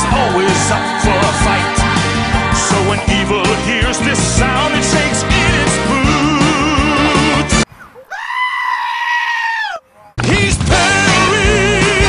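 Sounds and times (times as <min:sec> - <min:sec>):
theme music: 0:00.0 - 0:07.6, 0:10.2 - 0:12.0
goat screaming: 0:07.8 - 0:10.1.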